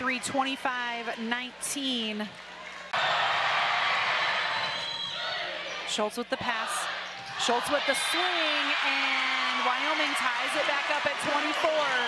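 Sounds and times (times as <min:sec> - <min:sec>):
crowd cheering and shouting: 0:02.9 - 0:05.8, 0:06.4 - 0:12.0.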